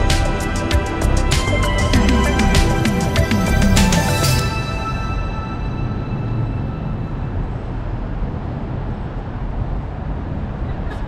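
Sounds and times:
background music: 0.0s - 7.8s
traffic rumble: 0.0s - 11.0s.

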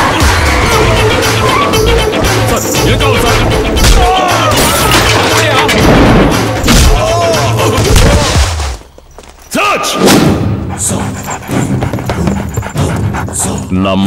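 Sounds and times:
people shouting: 0.0s - 2.4s, 3.2s - 5.7s
dramatic background score: 0.0s - 8.9s, 9.7s - 13.8s.

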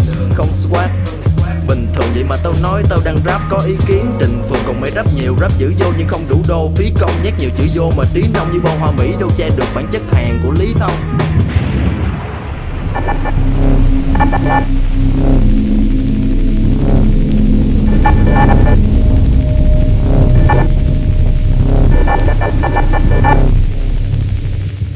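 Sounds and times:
deep steady drone: 0.0s - 24.9s
high electronic tones: 12.8s - 23.8s.

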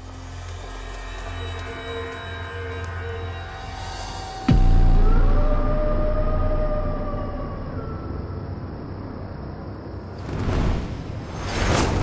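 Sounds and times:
dark suspenseful drone music: 0.0s - 10.2s.

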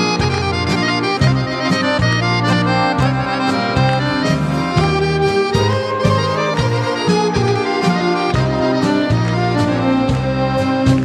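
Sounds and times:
accordion melody: 0.0s - 11.0s
double bass: 0.0s - 11.0s
violins: 0.0s - 11.0s.

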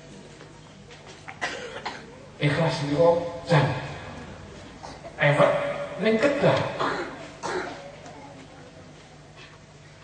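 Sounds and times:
man coughing: 1.4s - 2.1s, 6.7s - 7.8s
man clearing his throat: 1.4s - 2.2s, 6.7s - 7.9s.

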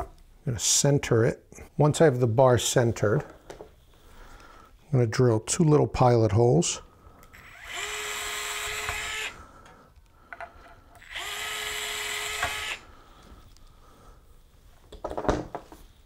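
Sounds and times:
cordless drill boring into wood: 7.3s - 9.4s, 11.0s - 12.9s.

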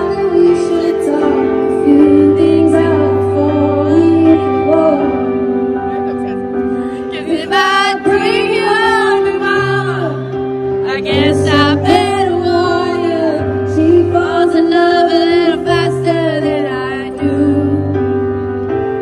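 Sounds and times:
woman singing a slow ballad: 0.0s - 5.7s, 7.0s - 18.7s
piano accompaniment: 0.0s - 19.0s.

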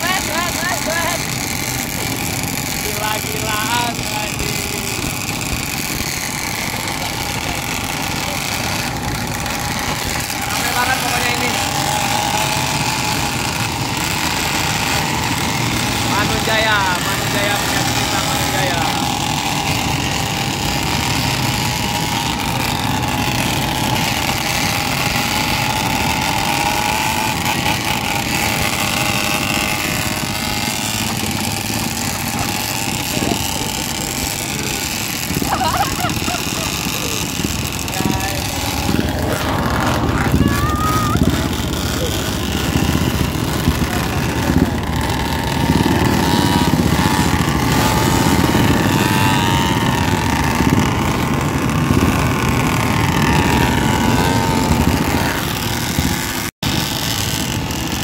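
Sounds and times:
motorcycle and scooter engines: 0.0s - 58.0s.

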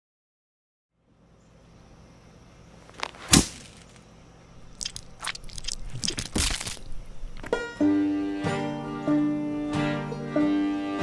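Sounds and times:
crackers crunching: 2.8s - 7.6s.

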